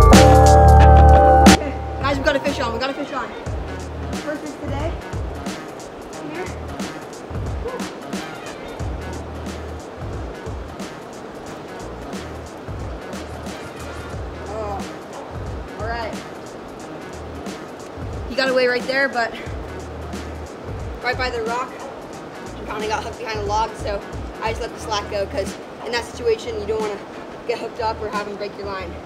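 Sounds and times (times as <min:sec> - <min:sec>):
background music with bass beat: 0:00.0 - 0:02.9, 0:03.5 - 0:26.9
person speaking: 0:00.0 - 0:03.4, 0:06.2 - 0:06.9, 0:13.1 - 0:15.1, 0:18.2 - 0:19.9, 0:22.5 - 0:29.0.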